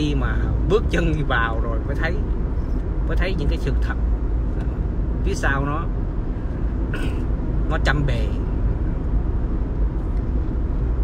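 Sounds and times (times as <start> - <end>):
road and engine rumble in car: 0.0 - 11.0.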